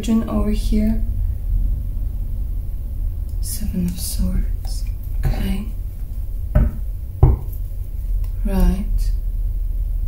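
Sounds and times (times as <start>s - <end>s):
steady low hum: 0.0s - 10.0s
card deck knocking on table: 6.6s - 7.5s.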